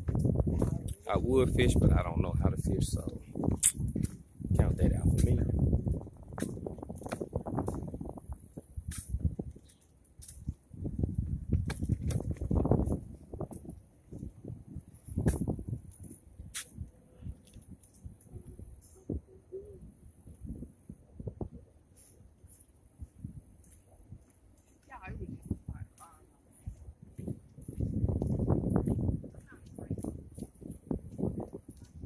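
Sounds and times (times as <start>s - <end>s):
wind gusting on microphone: 0.0s - 24.2s, 24.9s - 32.0s
footsteps on concrete: 23.6s - 32.0s.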